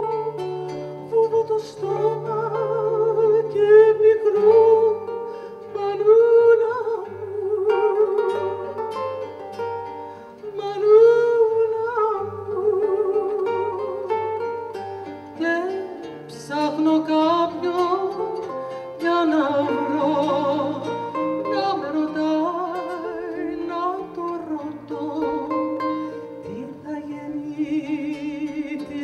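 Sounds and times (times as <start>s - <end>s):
woman singing with vibrato: 0.0s - 9.4s, 10.4s - 14.5s, 15.2s - 29.0s
classical guitar playing: 0.0s - 29.0s.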